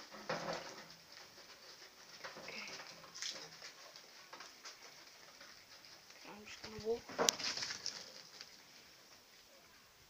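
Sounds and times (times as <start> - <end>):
warthogs snuffling and rooting: 0.0 - 10.0.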